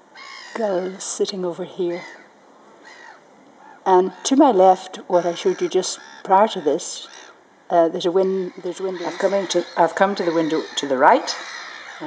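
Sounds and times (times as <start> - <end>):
distant birds calling harshly: 0.0 - 12.0
woman speaking: 0.6 - 2.1, 3.9 - 7.1, 7.7 - 11.5.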